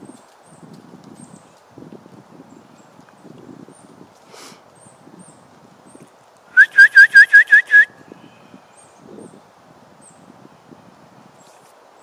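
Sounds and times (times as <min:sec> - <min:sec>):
bird calling rapid notes: 0:06.6 - 0:07.9.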